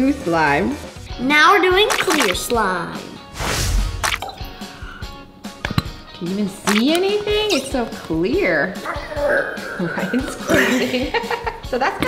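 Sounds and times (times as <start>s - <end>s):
background music: 0.0s - 12.0s
sharp clicks: 6.7s - 7.1s.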